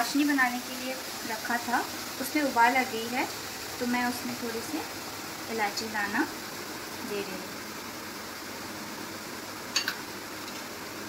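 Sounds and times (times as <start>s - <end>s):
hiss of gas burners: 0.0s - 11.0s
utensil clinking against dish: 9.8s - 10.0s.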